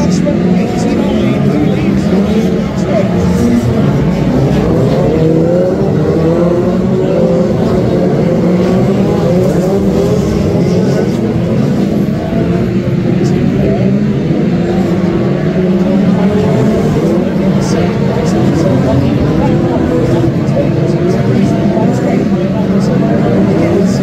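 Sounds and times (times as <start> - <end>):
racing car engines: 0.0 - 24.0.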